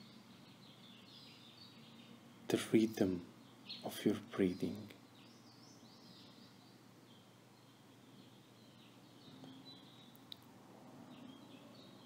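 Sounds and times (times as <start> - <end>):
faint high bird chirping: 0.0 - 10.4, 11.0 - 12.0.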